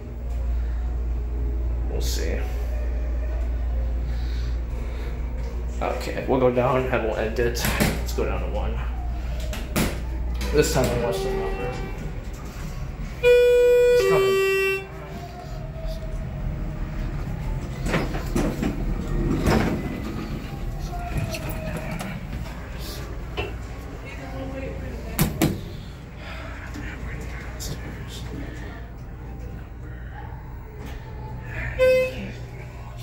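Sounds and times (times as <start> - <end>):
murmur of voices: 0.0 - 33.0.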